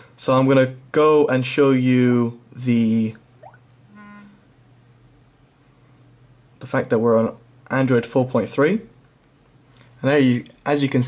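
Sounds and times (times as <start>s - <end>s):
phone vibration buzz: 3.9s - 4.5s.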